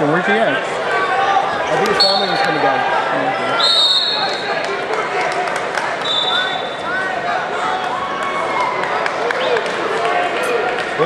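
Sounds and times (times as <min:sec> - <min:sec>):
voices in a gym: 0:00.0 - 0:11.0
referee's whistle blast: 0:02.0 - 0:02.6, 0:03.5 - 0:04.5, 0:06.0 - 0:06.7
faint whistle tones: 0:03.5 - 0:04.5, 0:06.0 - 0:06.7.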